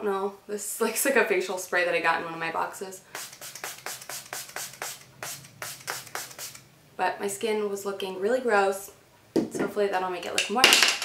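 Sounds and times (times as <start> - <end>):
spray bottle spritzing: 3.1 - 6.7.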